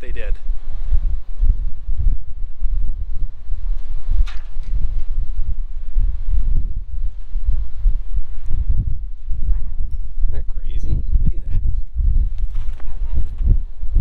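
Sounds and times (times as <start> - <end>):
gusty wind buffeting microphone: 0.0 - 14.0.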